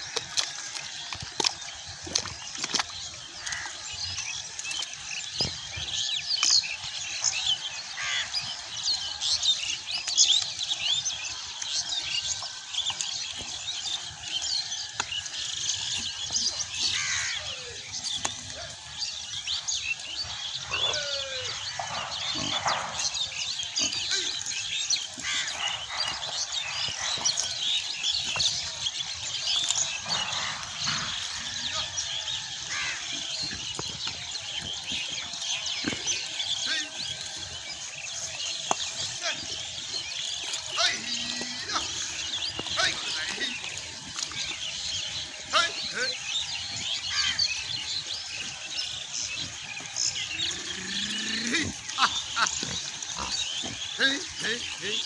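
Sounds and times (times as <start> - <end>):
small birds chirping: 0.0 - 55.0.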